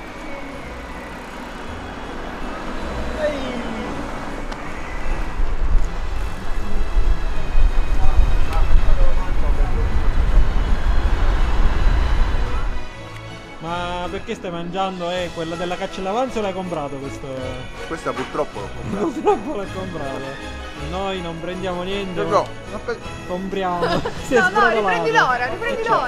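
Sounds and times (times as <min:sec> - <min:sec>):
skates and bicycles rolling: 0:00.0 - 0:12.8.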